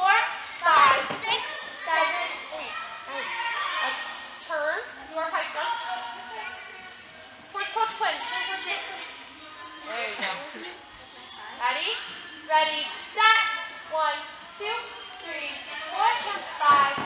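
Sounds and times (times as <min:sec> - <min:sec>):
children chattering and calling out: 0:00.0 - 0:17.0.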